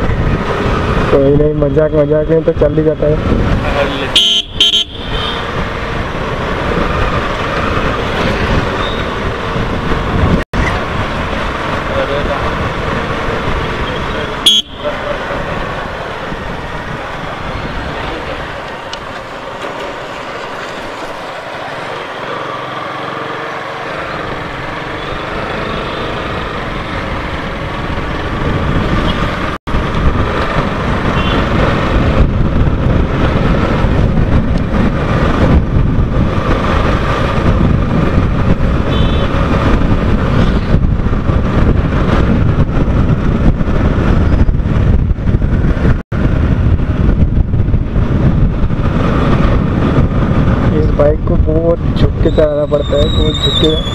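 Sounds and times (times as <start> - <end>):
wind buffeting on helmet: 0.0 - 1.4, 3.2 - 14.6, 15.2 - 21.8, 26.2 - 53.9
motorcycle engine: 3.4 - 50.8.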